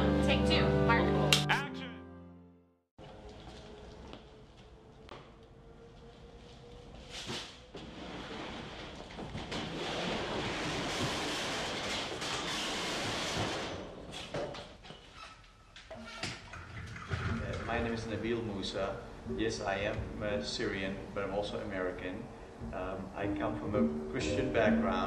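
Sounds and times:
metal shutter door rattling: 0:07.9 - 0:14.4.

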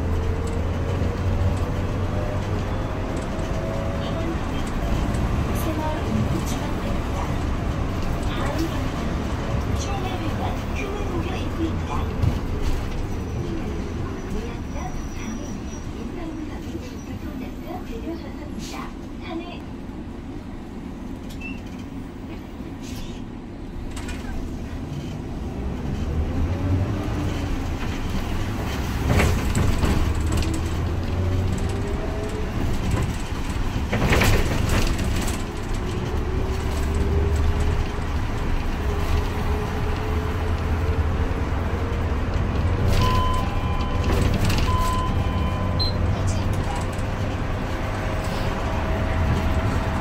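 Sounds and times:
bus engine rumble: 0:00.0 - 0:50.0.

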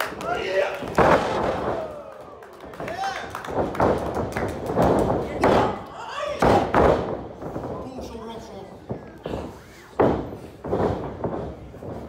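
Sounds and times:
bodies thudding on ring canvas: 0:06.4 - 0:07.8, 0:08.8 - 0:12.0.

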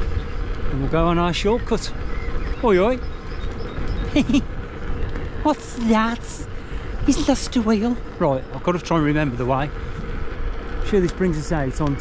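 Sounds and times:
wind rumble on microphone: 0:00.0 - 0:12.0
man laughing: 0:04.0 - 0:04.5.

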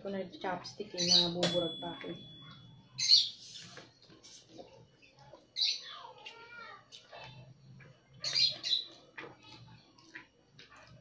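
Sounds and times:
noodles being slurped: 0:03.3 - 0:11.0
soft chewing and smacking: 0:03.5 - 0:11.0.

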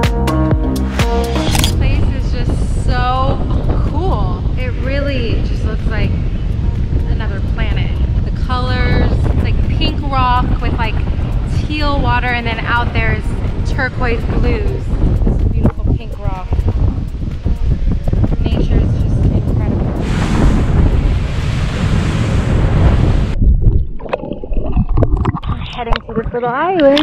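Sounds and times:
electronic music: 0:00.0 - 0:02.0
wind buffeting microphone: 0:01.5 - 0:27.0.

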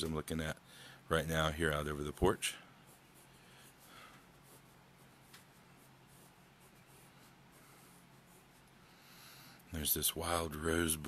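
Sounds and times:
pencil scratching on paper: 0:02.8 - 0:08.8.

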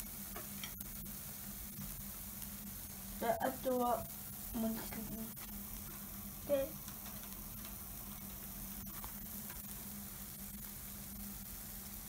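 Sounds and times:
food sizzling on a griddle: 0:00.0 - 0:12.0.

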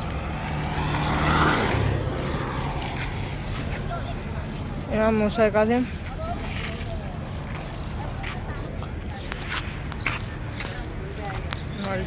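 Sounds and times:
vehicle passing by: 0:00.0 - 0:12.0.

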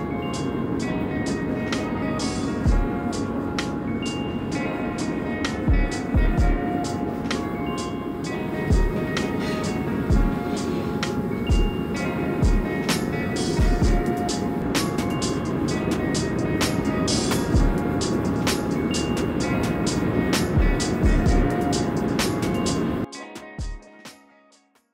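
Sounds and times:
background music with steady beat: 0:00.0 - 0:24.9.

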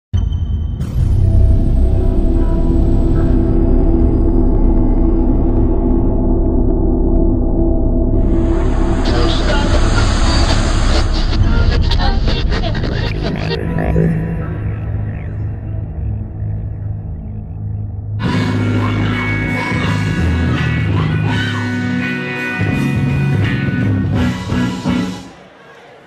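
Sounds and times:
low drone with held tones: 0:00.9 - 0:23.4.

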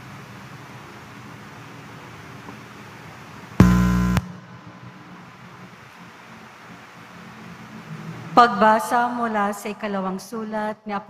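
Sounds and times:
loud electronic buzz: 0:03.6 - 0:05.4.

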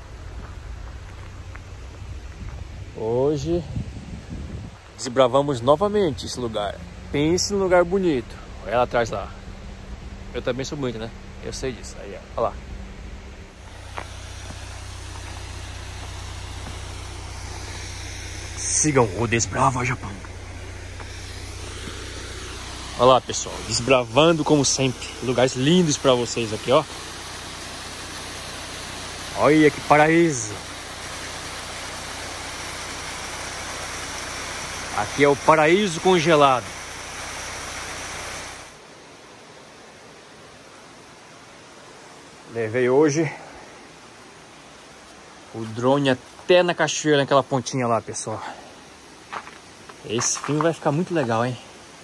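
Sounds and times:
car engine idling: 0:00.0 - 0:03.6, 0:04.9 - 0:38.8
background hiss: 0:00.0 - 0:52.0
small waterfall rushing: 0:04.8 - 0:52.0.

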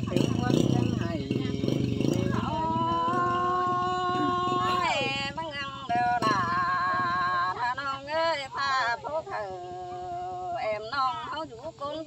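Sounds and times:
woman singing a long note: 0:00.0 - 0:11.4.

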